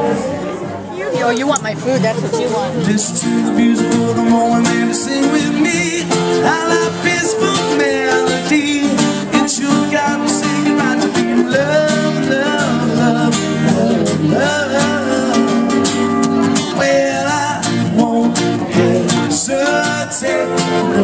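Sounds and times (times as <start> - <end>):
acoustic guitars strummed: 0.0 - 21.0
man singing into a microphone: 2.7 - 21.0.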